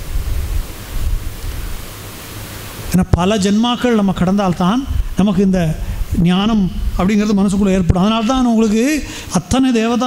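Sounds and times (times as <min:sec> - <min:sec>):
background hiss: 0:00.0 - 0:10.0
man speaking: 0:03.0 - 0:10.0.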